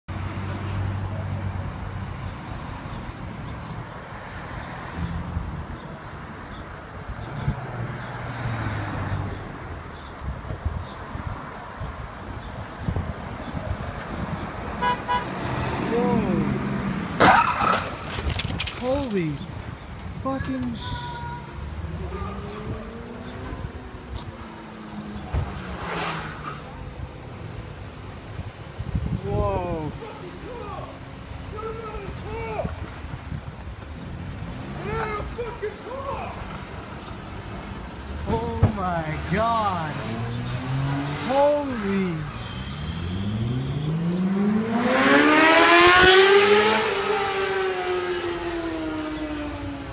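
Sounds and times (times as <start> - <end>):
street traffic rumble: 0.1 - 49.9
engine hum: 13.9 - 49.9
car horn toots: 14.8 - 15.4
car driving past: 42.2 - 49.7.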